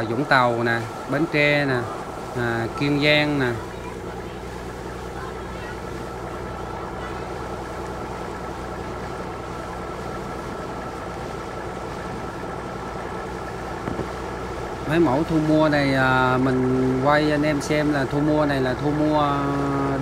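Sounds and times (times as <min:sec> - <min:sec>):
boat engine humming: 0:00.0 - 0:20.0.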